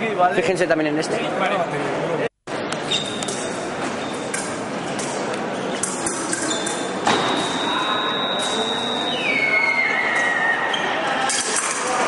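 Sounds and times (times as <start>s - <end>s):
hum of voices in hall: 6.8s - 12.0s
high-pitched electronic beep: 7.4s - 9.6s.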